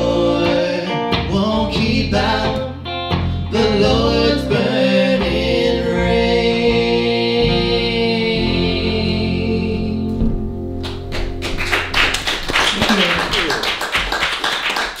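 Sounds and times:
people clapping: 0:10.8 - 0:15.0.

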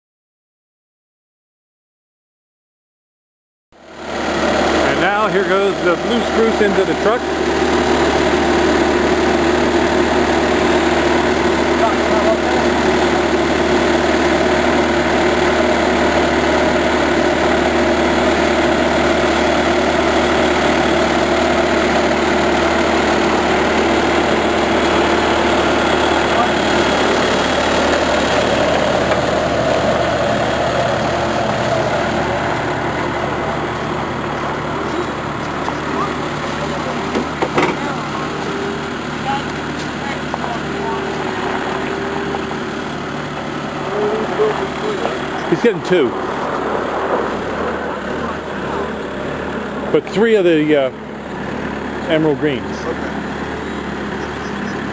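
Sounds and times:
engine idling: 0:03.8 - 0:54.9.

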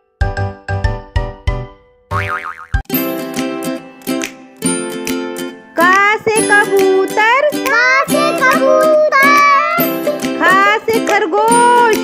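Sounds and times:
wobbling boing sound effect: 0:02.1 - 0:02.8.

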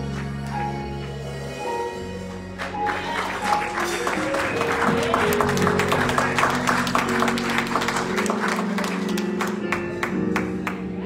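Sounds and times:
held chords: 0:00.0 - 0:11.0
hand claps: 0:02.6 - 0:10.9.

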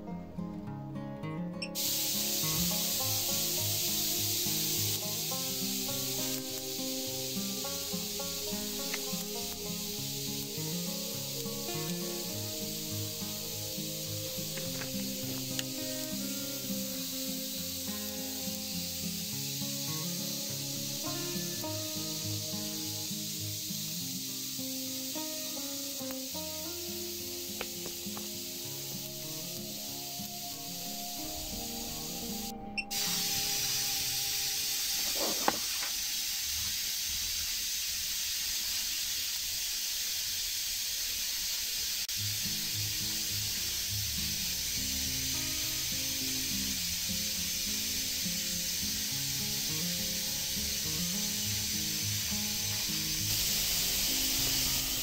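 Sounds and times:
background music: 0:00.0 - 0:23.7, 0:24.9 - 0:36.0, 0:48.6 - 0:55.0
electrical discharge hiss: 0:01.7 - 0:55.0.

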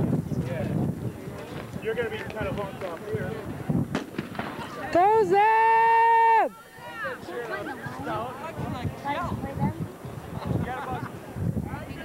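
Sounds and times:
onlookers chattering: 0:00.0 - 0:12.0.

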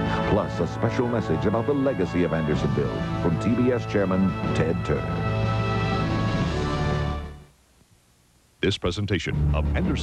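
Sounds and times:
background music sustained chords: 0:00.0 - 0:07.5.

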